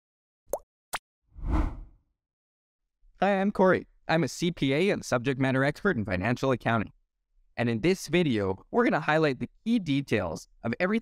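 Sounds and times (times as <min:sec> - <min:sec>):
deep whoosh: 0:01.4 - 0:01.9.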